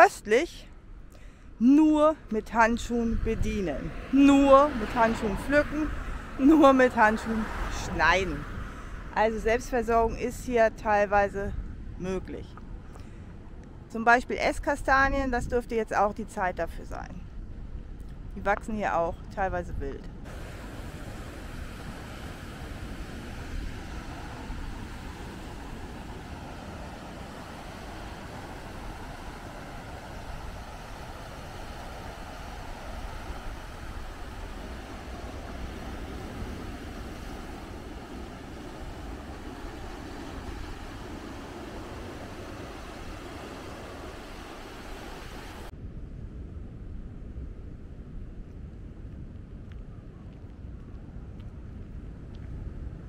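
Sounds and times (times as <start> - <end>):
wind on microphone: 1.8 - 53.0
surf breaking on pebble beach: 20.3 - 45.7.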